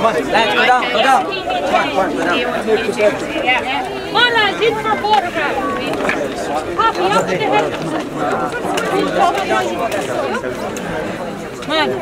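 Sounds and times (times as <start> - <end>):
indistinct group chatter: 0.0 - 12.0.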